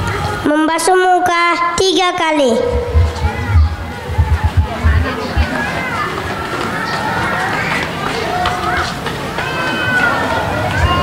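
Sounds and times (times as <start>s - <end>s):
audience chatter: 0.0s - 0.5s, 1.5s - 11.0s.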